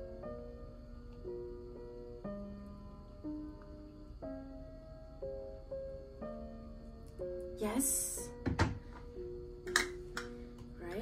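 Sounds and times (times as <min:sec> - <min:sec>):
soft background music: 0:00.0 - 0:11.0
kettle set down on wooden table: 0:08.4 - 0:09.0, 0:09.7 - 0:10.3.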